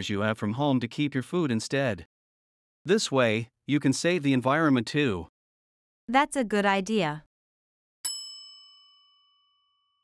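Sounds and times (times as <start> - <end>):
bell-like chime: 8.0 - 10.0.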